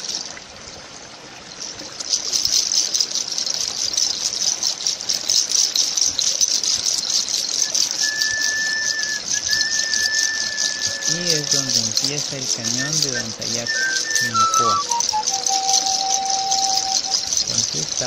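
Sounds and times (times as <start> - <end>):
stream water rushing: 0.0 - 18.0
thin whistling tone: 6.0 - 18.0.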